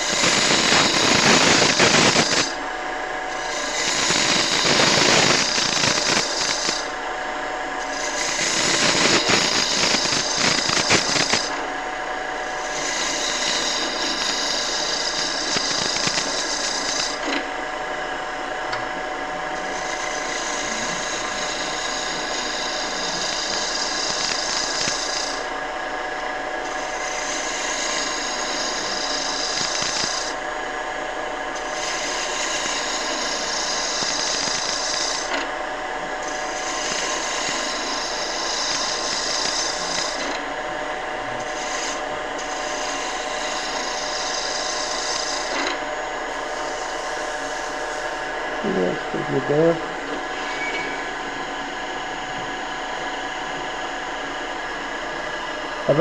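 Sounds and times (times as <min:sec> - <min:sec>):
gouge shearing cut on wood: 0:00.0 - 0:02.6, 0:03.3 - 0:07.0, 0:07.8 - 0:25.9, 0:26.5 - 0:30.6, 0:31.5 - 0:56.0
lathe motor hum: 0:00.0 - 0:56.0.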